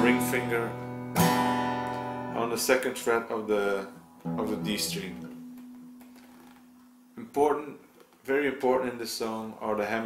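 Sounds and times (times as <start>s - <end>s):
acoustic guitar note ringing: 4.0s - 6.9s.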